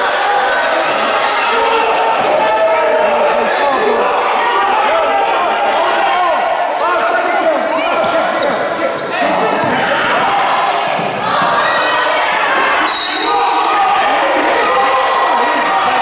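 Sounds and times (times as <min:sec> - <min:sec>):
echoing crowd voices: 0:00.0 - 0:16.0
basketball bouncing on wooden court: 0:09.5 - 0:09.8.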